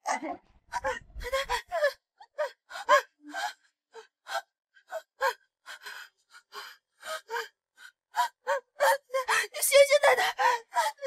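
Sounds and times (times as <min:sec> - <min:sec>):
woman sobbing: 0:08.2 - 0:11.0.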